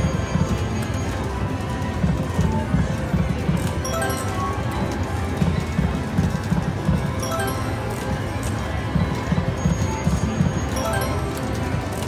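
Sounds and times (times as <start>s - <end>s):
slot machine game music: 0.0s - 12.0s.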